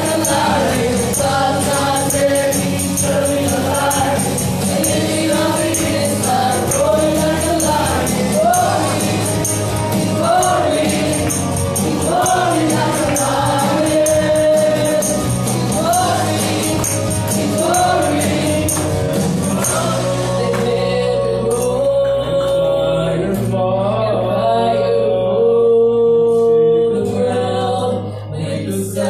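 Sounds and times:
music with bright percussive beat: 0.0s - 22.6s
man singing: 19.5s - 29.0s.

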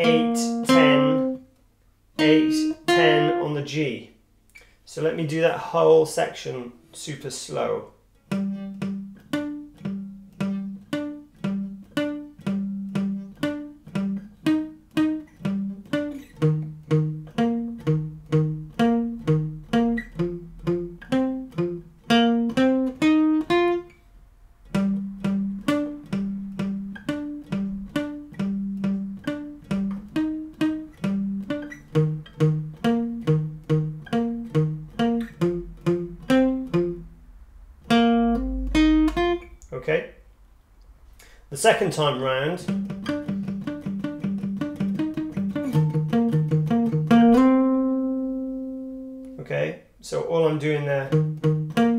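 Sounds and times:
acoustic guitar picked riff: 0.0s - 1.5s, 2.2s - 3.9s, 8.2s - 24.0s, 24.6s - 39.6s, 42.6s - 49.4s, 51.0s - 51.9s.

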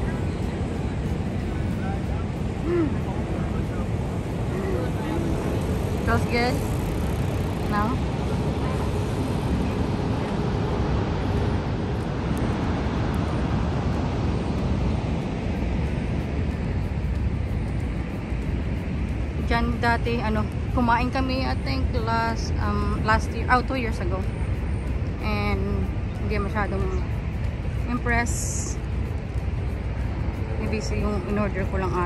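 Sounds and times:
faint voices of people: 0.0s - 5.6s.

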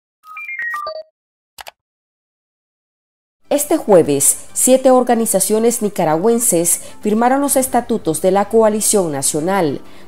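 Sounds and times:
bright electronic beeps: 0.2s - 1.1s.

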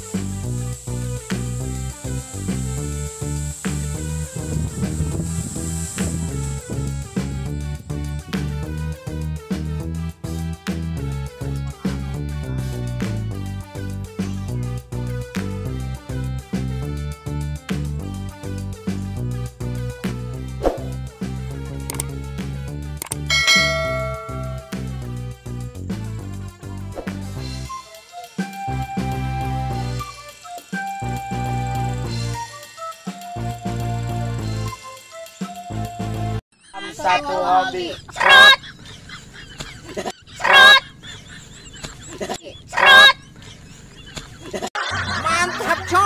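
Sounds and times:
background music with beat: 0.0s - 36.4s
click: 21.9s - 22.1s, 23.0s - 23.2s
bell-like ding: 23.3s - 24.9s
goose honking: 36.8s - 38.7s, 40.4s - 40.9s, 42.7s - 43.2s.

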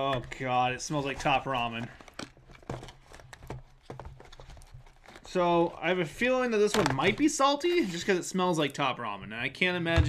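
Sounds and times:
packaging clicks and taps: 0.0s - 5.5s, 6.5s - 7.4s.

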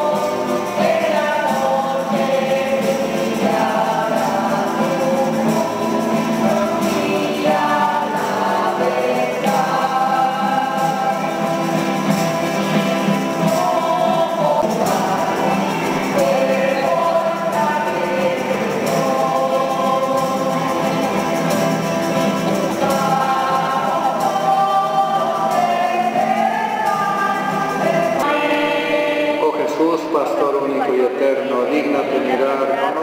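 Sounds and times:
group singing a hymn: 0.0s - 33.0s.

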